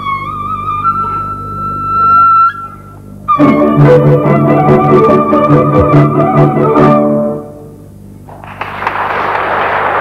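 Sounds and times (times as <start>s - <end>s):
quiet string accompaniment: 0.0s - 8.1s.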